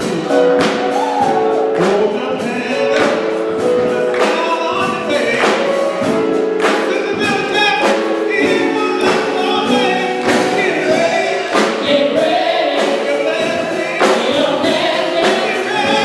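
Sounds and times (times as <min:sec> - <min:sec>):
gospel group singing: 0:00.0 - 0:16.0.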